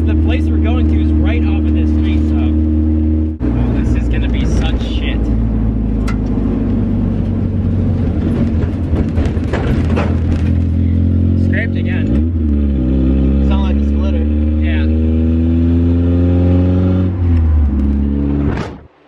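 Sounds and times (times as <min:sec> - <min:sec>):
car engine accelerating through gears: 0:00.0 - 0:19.0.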